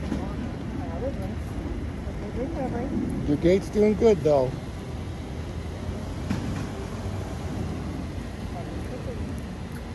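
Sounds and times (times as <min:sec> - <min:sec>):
low outdoor rumble: 0:00.0 - 0:09.9.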